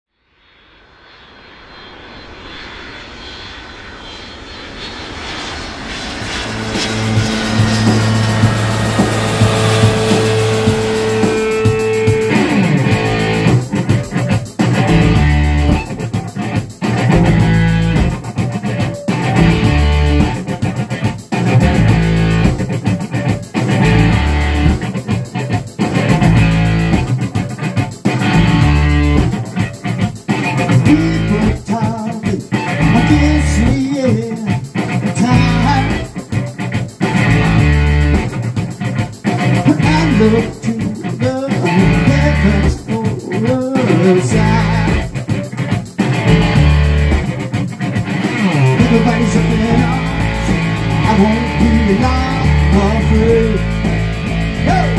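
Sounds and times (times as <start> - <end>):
electric guitar: 1.0 - 54.9
swelling roar: 1.2 - 14.0, 48.2 - 54.9
held low notes: 4.7 - 14.0, 17.0 - 18.2, 19.4 - 20.4, 21.6 - 22.6, 23.8 - 24.8, 41.8 - 42.8, 44.1 - 45.1, 46.2 - 47.3, 48.4 - 54.9
bass guitar: 6.4 - 31.8, 32.4 - 54.9.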